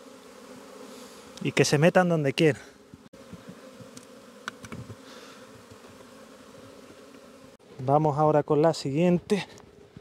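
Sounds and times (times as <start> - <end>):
bees buzzing: 0.0 - 8.6.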